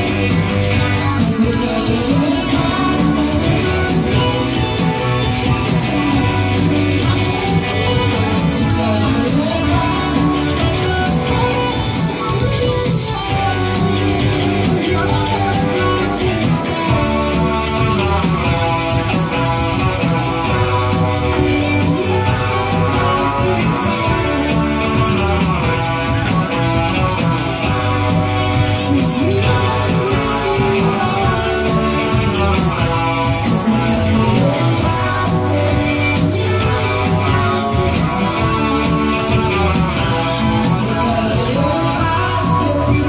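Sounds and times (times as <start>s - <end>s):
live band with guitar: 0.0s - 43.0s.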